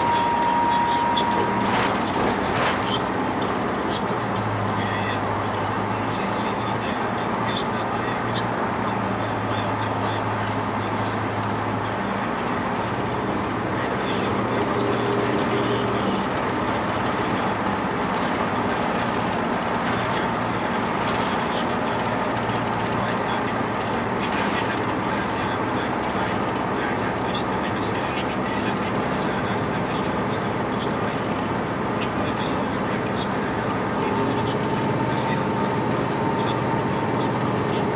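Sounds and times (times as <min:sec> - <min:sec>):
bus engine and road drone: 0:00.0 - 0:37.9
interior clicks and rattles: 0:01.2 - 0:07.6, 0:10.1 - 0:37.9.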